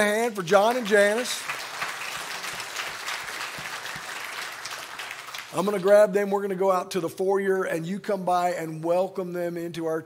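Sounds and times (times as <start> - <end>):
crowd clapping: 0.0 - 6.1.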